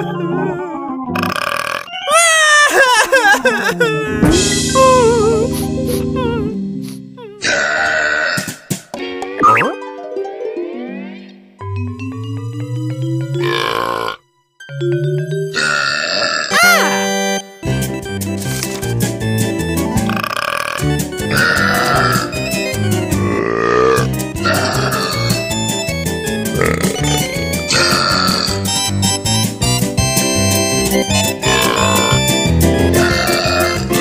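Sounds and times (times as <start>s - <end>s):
cartoon burp: 1.1s - 2.0s, 7.4s - 8.7s, 13.4s - 14.2s, 15.5s - 17.0s, 20.1s - 22.4s, 23.2s - 25.3s, 26.6s - 28.6s, 31.4s - 32.2s, 33.0s - 34.0s
plinking background music: 9.0s - 20.2s, 20.8s - 34.0s.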